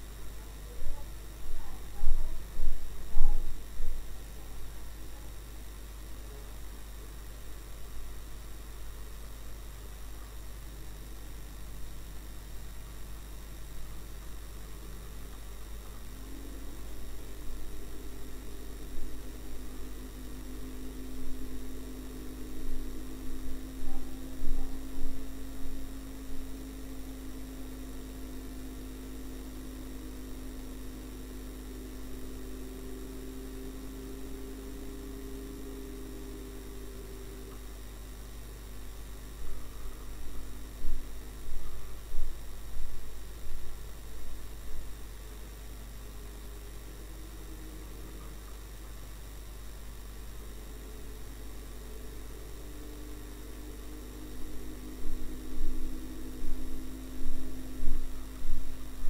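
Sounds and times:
low electrical hum: 0:00.0 - 0:59.0
uneven noise surges: 0:00.0 - 0:59.0
engine drone: 0:13.8 - 0:45.0, 0:45.6 - 0:59.0.

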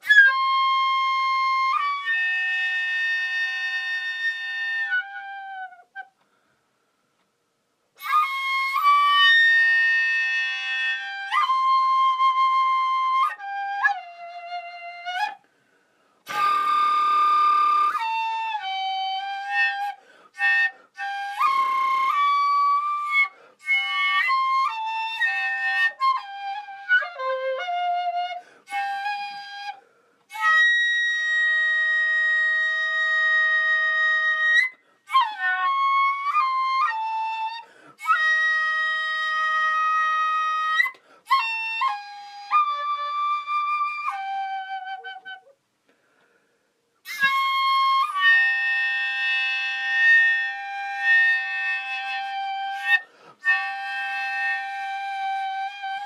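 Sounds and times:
solo recorder melody: 0:00.0 - 0:06.2, 0:08.0 - 0:15.4, 0:16.3 - 0:45.6, 0:47.0 - 0:56.0.

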